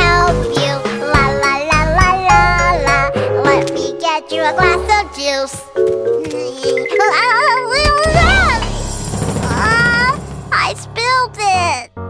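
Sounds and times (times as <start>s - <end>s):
children's song music: 0.0s - 12.0s.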